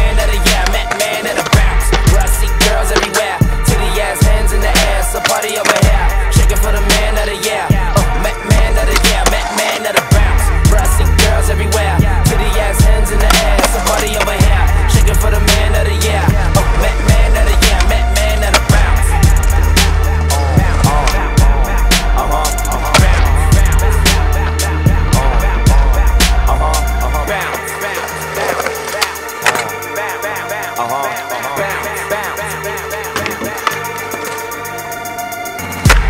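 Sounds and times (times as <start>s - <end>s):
hip-hop music with drum beat: 0.0s - 36.0s
skateboard wheels rolling on concrete: 0.0s - 36.0s
sharp skateboard clacks: 0.5s - 3.4s, 5.1s - 5.9s, 8.6s - 10.1s, 28.4s - 29.8s, 33.1s - 34.5s.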